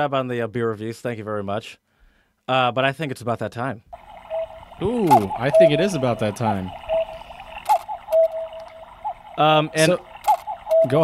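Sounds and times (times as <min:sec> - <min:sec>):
tick-tock clicks and tones: 0:07.8 - 0:08.8.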